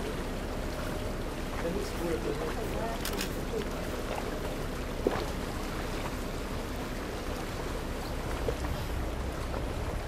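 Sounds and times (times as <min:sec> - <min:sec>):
boat engine rumble: 0:00.0 - 0:10.0
water rushing along hull: 0:00.0 - 0:10.0.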